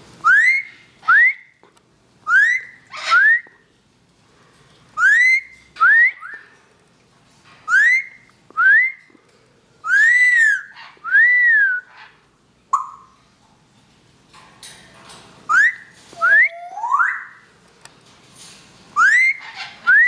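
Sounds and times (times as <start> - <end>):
parrot whistling: 0.2 - 1.5, 2.3 - 3.5, 5.0 - 6.4, 7.7 - 9.0, 9.8 - 12.1, 12.7 - 13.2, 15.5 - 17.5, 19.0 - 20.0.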